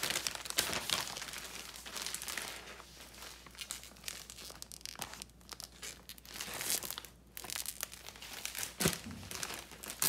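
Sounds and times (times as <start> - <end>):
plastic packaging crinkling: 0.0 - 10.0.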